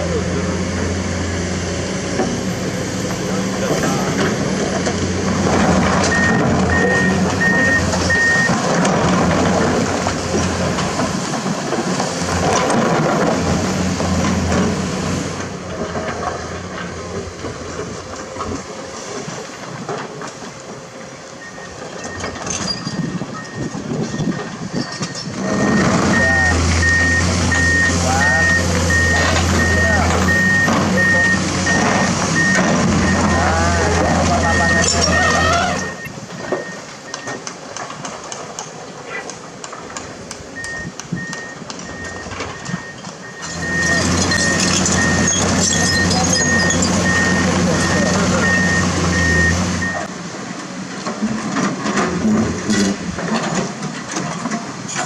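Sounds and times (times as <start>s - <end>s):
excavator engines under load: 0.0s - 55.0s
reversing alarm beeping: 6.0s - 8.6s, 21.4s - 37.4s, 40.6s - 50.1s.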